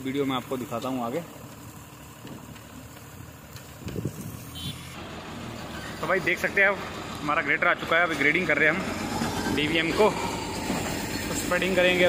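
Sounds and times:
diesel truck engine running: 0.0s - 12.0s.

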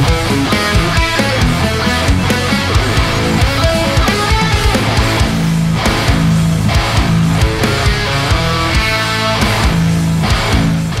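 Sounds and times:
distorted electric guitar riff: 0.0s - 11.0s.

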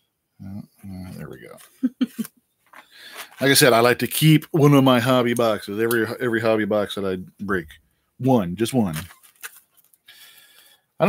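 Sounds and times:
plastic wrap and cardboard crinkling: 8.8s - 10.0s.

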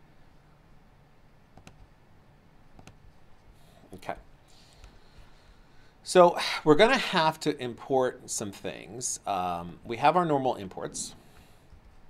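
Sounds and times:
computer mouse clicks: 1.6s - 1.9s, 2.8s - 3.1s.

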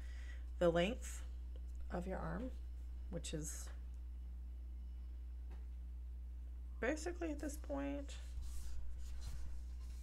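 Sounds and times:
steady low hum: 0.0s - 10.0s
soft scratching and rubbing: 7.5s - 10.0s.

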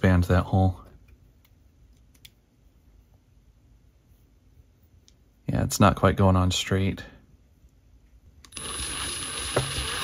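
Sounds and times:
power drill whining: 8.5s - 10.0s.

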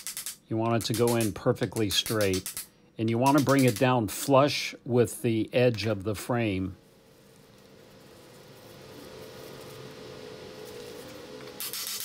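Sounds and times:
faint steady hum: 0.3s - 12.0s.

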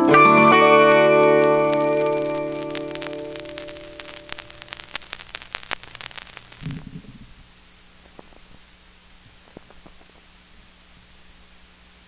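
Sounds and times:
faint hum: 0.0s - 12.0s
vinyl crackles and pops: 0.0s - 12.0s
surface hiss: 0.7s - 8.6s
short low thump: 6.6s - 7.4s.

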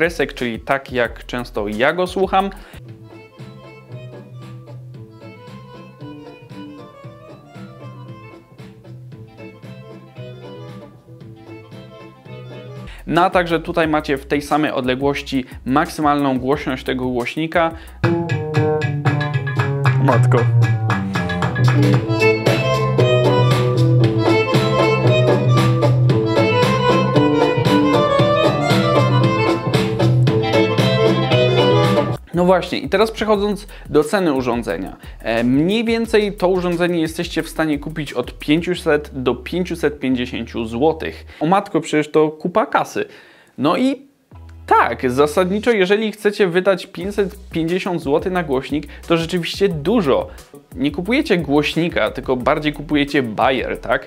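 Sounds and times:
music from bluetooth speaker: 2.2s - 13.1s, 17.0s - 38.5s, 47.0s - 53.9s.

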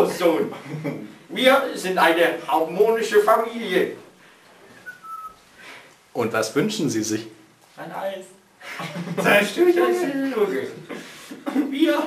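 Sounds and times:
high-pitched whistle tone: 4.8s - 5.4s.

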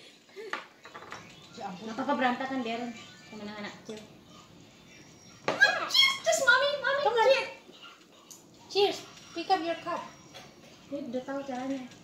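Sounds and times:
high-pitched excited voices: 5.5s - 7.6s.

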